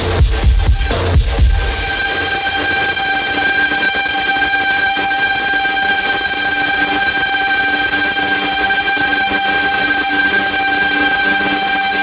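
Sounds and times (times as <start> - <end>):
electronic horn-like drone: 0.0 - 12.0.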